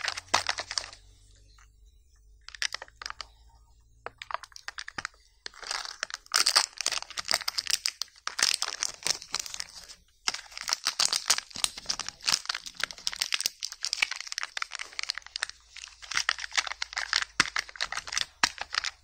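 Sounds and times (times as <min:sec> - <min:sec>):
foil wrapper crinkling and tearing: 0:00.0 - 0:01.0, 0:02.4 - 0:03.4, 0:04.1 - 0:19.0.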